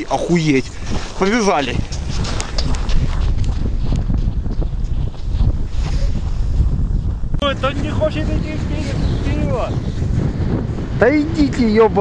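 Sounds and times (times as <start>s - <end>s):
wind blowing on microphone: 0.0s - 12.0s
footsteps on snow: 0.6s - 6.8s.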